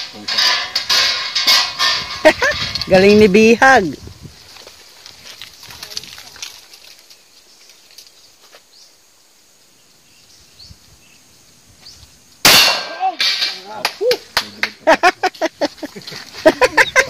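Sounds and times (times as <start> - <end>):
loud handgun shot: 12.5 - 13.0.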